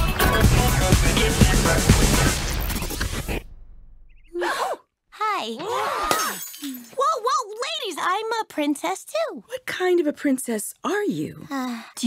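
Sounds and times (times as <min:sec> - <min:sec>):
glass shattering: 0:06.1 - 0:07.1.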